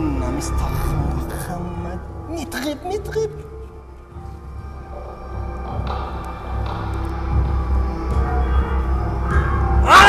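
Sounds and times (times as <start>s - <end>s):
tense low drone music: 0.0s - 10.0s.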